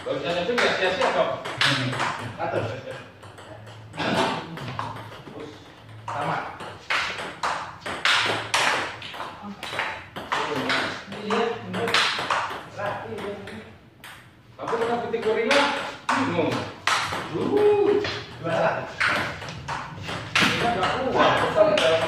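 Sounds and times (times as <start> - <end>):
table tennis ball hits: 0.3 - 22.0
voices talking: 14.6 - 22.0.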